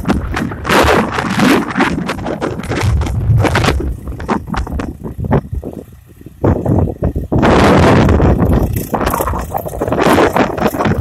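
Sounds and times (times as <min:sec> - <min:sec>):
tractor diesel engine running: 0:00.0 - 0:11.0
wind buffeting microphone: 0:00.0 - 0:11.0.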